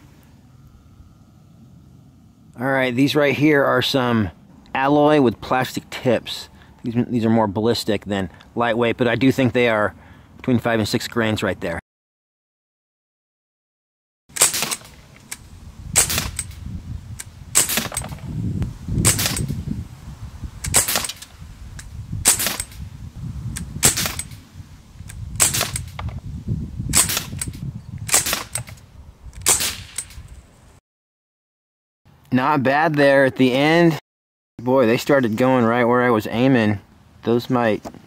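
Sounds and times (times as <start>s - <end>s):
air rifle shots: 14.3s - 16.6s, 17.5s - 18.3s, 19.0s - 19.6s, 20.6s - 21.3s, 22.2s - 22.9s, 23.5s - 24.4s, 25.1s - 26.1s, 26.9s - 28.8s, 29.4s - 30.3s.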